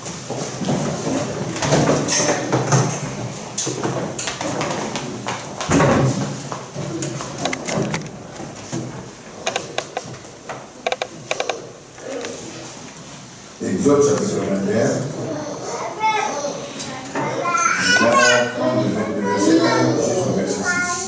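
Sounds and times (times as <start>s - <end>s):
knocks and clicks: 7.4s - 8.2s, 9.4s - 10.2s, 10.8s - 11.6s.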